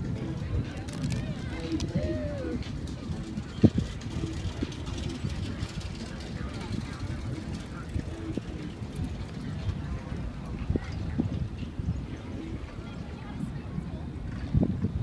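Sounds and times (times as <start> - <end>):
bike rattling and knocking: 0.8 - 11.5.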